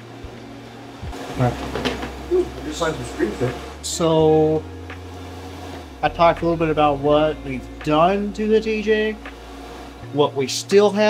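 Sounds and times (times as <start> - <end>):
low room hum: 0.0 - 10.5.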